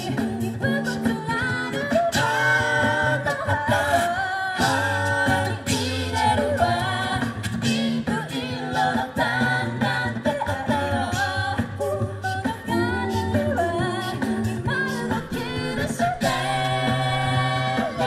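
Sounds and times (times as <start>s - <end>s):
a cappella group singing: 0.0s - 18.0s.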